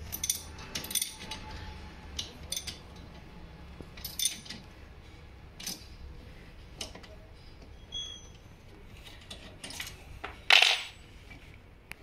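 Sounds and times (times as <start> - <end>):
metal spanner clinking: 0.0 - 1.5, 2.2 - 2.8, 4.0 - 4.6.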